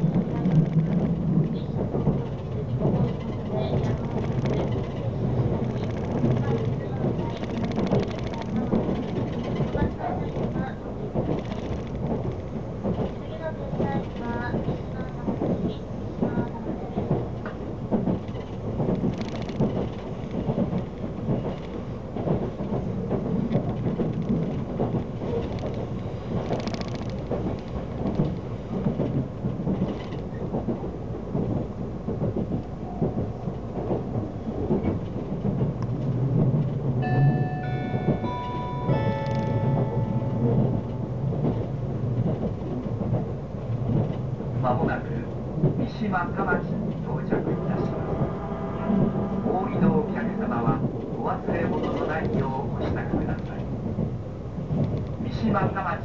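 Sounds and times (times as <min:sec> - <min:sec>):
train rumble inside carriage: 0:00.0 - 0:56.0
wheel and rail clatter: 0:00.0 - 0:56.0
high ringing tones: 0:37.0 - 0:41.4.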